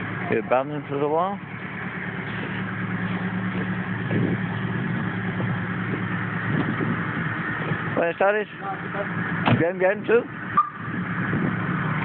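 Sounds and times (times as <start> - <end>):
car engine idling: 0.0 - 12.0
street noise: 0.0 - 12.0.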